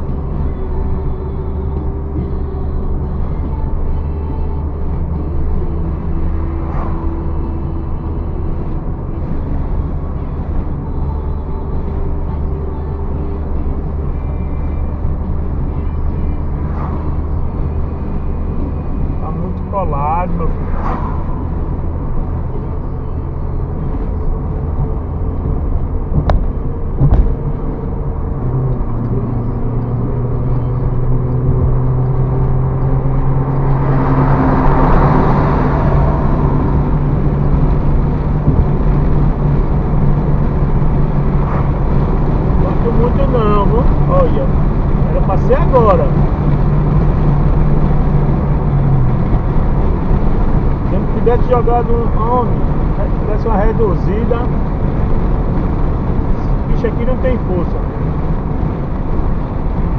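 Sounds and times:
car engine: 0.0s - 59.9s
road noise inside car: 0.0s - 59.9s.

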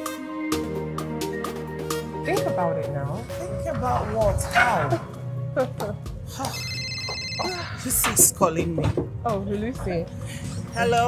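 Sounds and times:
background music: 0.0s - 11.0s
mobile phone ringtone: 6.4s - 8.0s.

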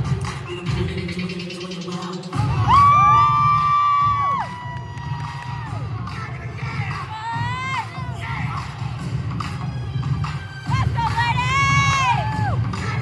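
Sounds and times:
dance music with steady beat: 0.0s - 13.0s
spectators whooping: 2.4s - 5.8s.

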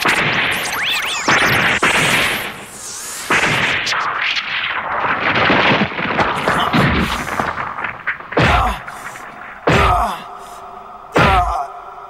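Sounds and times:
explosion blasts: 0.0s - 10.1s.

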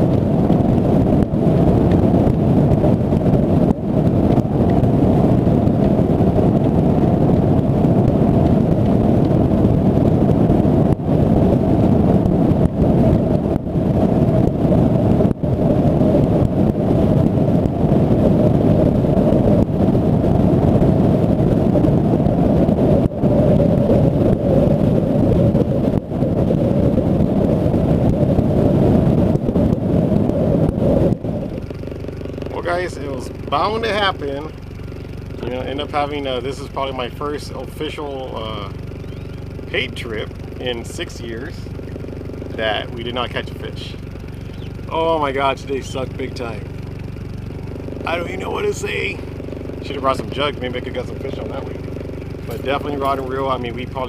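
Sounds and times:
outboard motor running: 0.0s - 54.0s
wind buffeting microphone: 0.0s - 54.0s.

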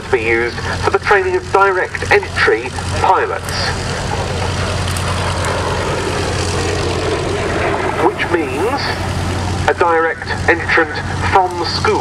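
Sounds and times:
propeller plane engines droning: 0.0s - 12.0s.

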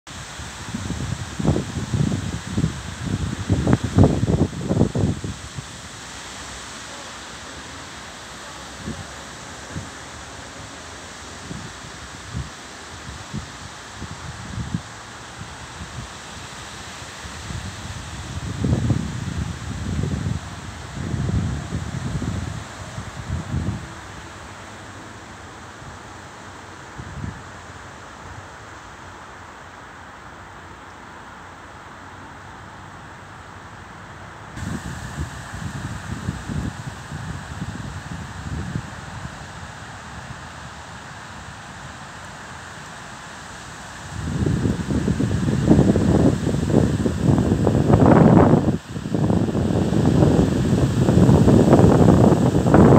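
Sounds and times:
leaves rustling in wind: 0.1s - 52.9s
wind buffeting microphone: 0.5s - 5.9s, 17.3s - 24.6s, 34.6s - 41.0s, 44.1s - 52.9s.

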